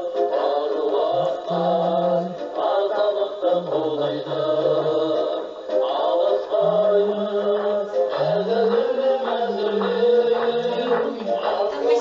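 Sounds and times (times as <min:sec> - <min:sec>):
man singing long notes: 0:00.0 - 0:12.0.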